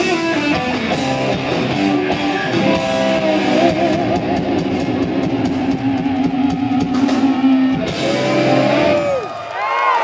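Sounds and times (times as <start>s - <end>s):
electric guitar bent lead notes: 0.0s - 9.2s
live rock band playing: 0.0s - 9.2s.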